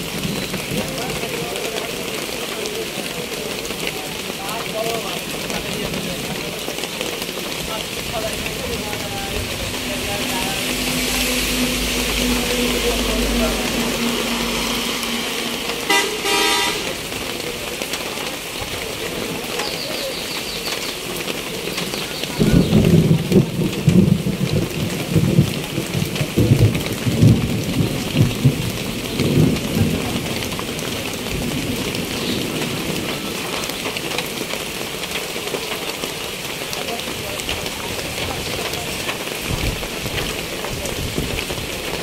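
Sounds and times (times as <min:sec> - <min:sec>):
heavy rain on a tin roof: 0:00.0 - 0:42.0
vehicle horn: 0:11.0 - 0:17.2.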